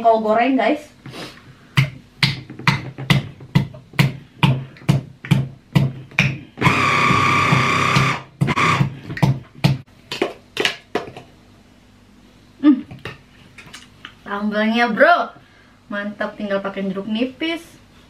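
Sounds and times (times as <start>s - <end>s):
electric hand blender whining: 6.6s - 9.0s.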